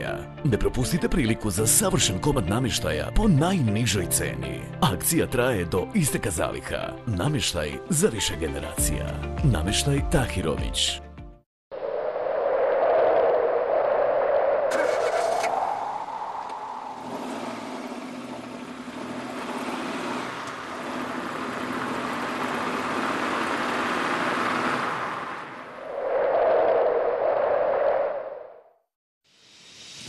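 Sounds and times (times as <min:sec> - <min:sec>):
noisy rushing sound: 0:11.8 - 0:18.5
car engine running: 0:16.5 - 0:25.7.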